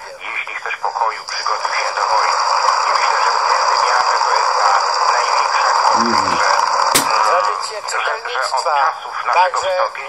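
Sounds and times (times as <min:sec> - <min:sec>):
radio static hiss: 0:00.0 - 0:09.5.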